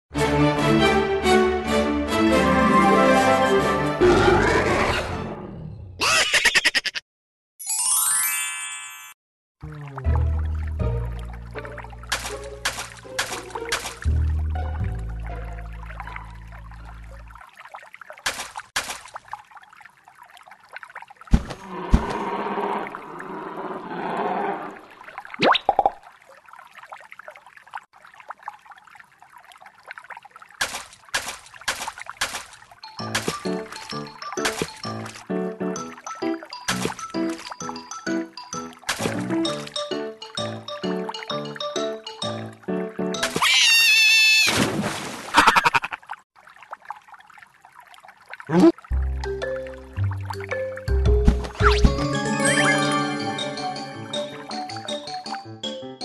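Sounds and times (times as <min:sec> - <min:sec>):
water trickling and lapping: 0:09.6 - 0:52.6
cartoon cry rising in pitch: 0:43.4 - 0:44.5.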